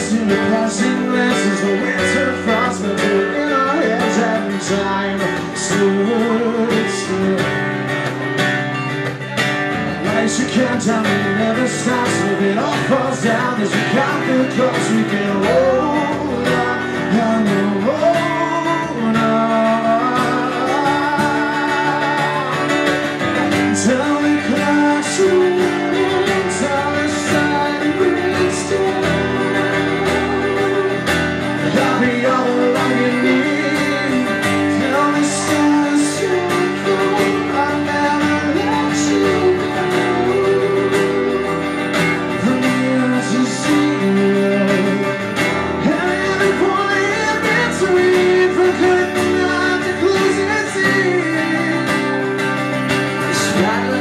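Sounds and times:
acoustic guitars strumming: 0.0 - 54.0
man singing: 0.0 - 54.0.

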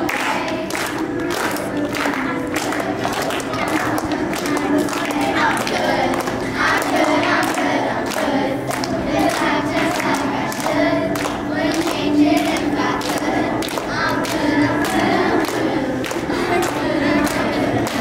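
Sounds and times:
girls choir singing: 0.0 - 18.0.

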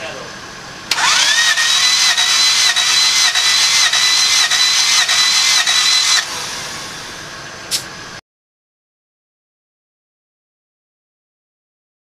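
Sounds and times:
engine cranking on starter motor: 0.9 - 7.1.

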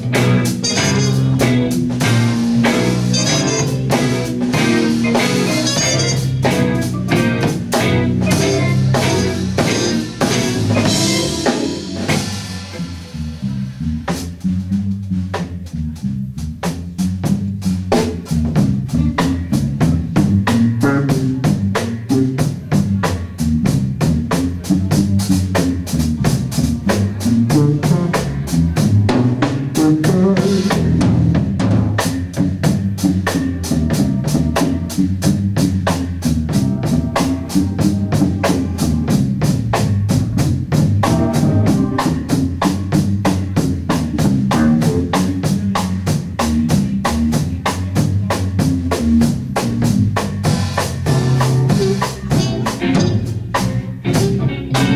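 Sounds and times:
guitar chords: 0.0 - 13.4, 40.9 - 42.6, 51.1 - 54.9
keyboard chords: 0.0 - 15.0, 32.6 - 47.4, 50.5 - 54.9
drum kit: 0.0 - 54.9
electric bass line: 0.0 - 54.9.

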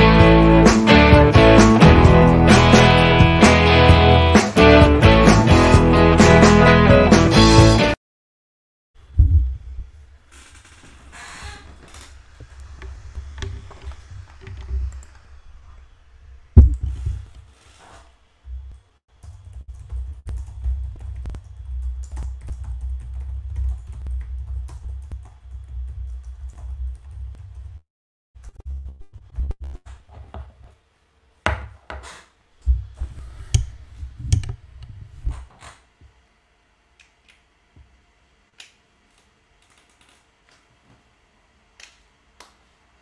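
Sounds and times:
bass-heavy background music: 0.0 - 8.0.

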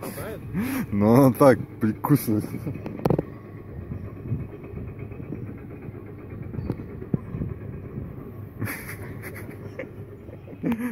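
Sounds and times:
vehicle engine idling: 0.0 - 10.9.

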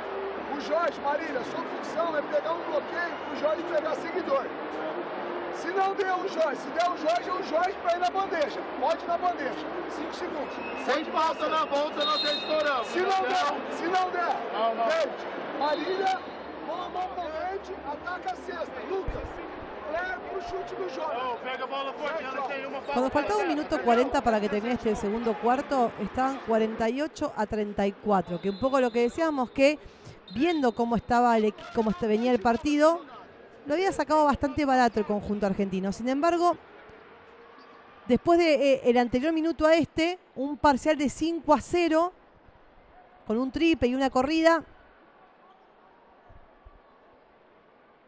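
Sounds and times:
crowd chatter: 0.0 - 40.2.

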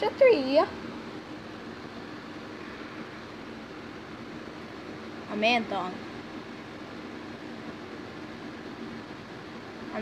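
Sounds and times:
faint low hum: 0.0 - 10.0.

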